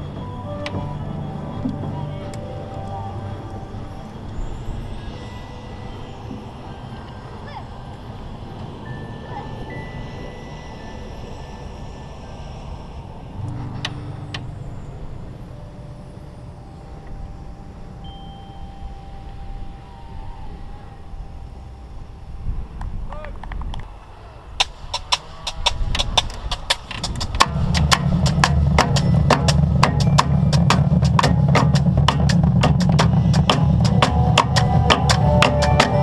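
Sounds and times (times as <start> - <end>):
faint steady tones: 0.0 - 36.0
wind rumbling on microphone: 0.0 - 36.0.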